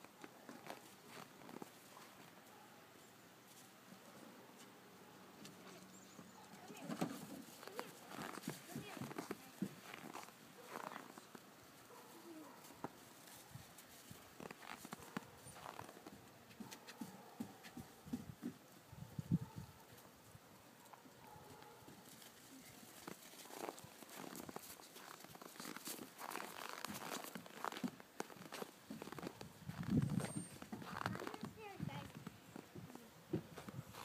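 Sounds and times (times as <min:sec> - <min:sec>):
footsteps on packed snow: 0:07.5 - 0:11.3, 0:22.9 - 0:32.2, 0:33.6 - 0:34.0.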